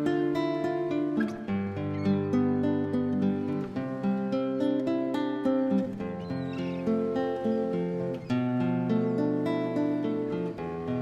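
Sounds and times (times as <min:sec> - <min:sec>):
solo classical guitar: 0:00.0 - 0:11.0.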